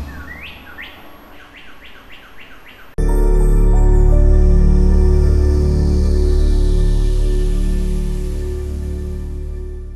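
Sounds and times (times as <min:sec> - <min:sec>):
rising bird chirps: 0:00.0 - 0:03.0
music with deep bass: 0:03.0 - 0:09.9.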